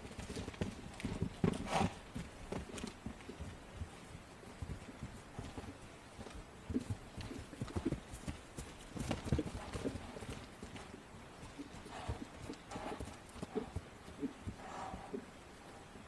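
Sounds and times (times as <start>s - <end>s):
horse hoofbeats on grass: 0.0s - 16.0s.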